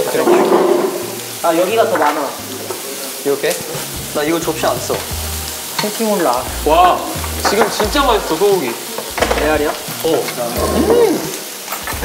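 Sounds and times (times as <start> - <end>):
meat sizzling on a grill pan: 0.0 - 12.0
person exclaiming: 10.6 - 11.3.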